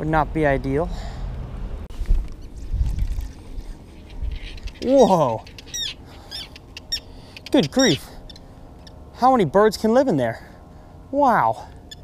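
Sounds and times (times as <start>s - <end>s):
boat engine rumble: 0.0s - 12.0s
water and wind around hull: 1.0s - 8.6s.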